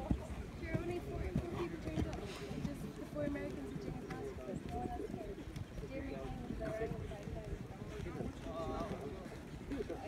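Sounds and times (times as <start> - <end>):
hoofbeats cantering on sand: 0.0 - 10.0
people talking: 0.0 - 10.0.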